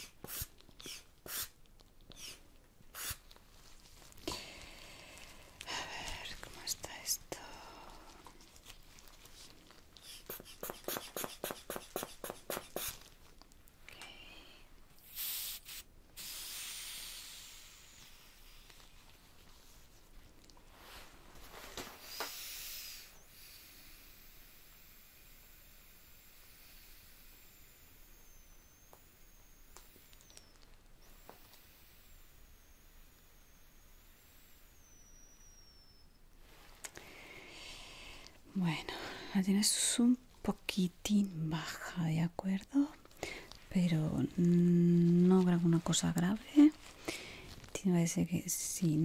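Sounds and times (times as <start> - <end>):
air hissing from valve: 0.0 - 3.2, 10.0 - 13.1, 15.0 - 18.9, 21.8 - 36.0
rubber bulb squeezes: 0.0 - 3.4, 9.9 - 13.1, 15.0 - 19.0, 21.8 - 36.2.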